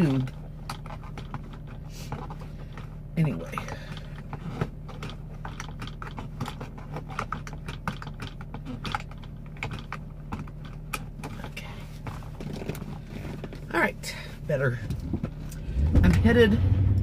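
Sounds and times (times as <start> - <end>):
seatbelt strap clicks and rustles: 0.0 - 13.7
engine idling hum: 0.0 - 17.0.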